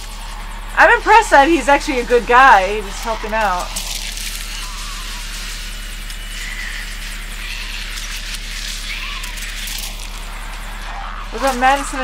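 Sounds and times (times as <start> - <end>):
steady noisy wash: 0.0 - 4.5.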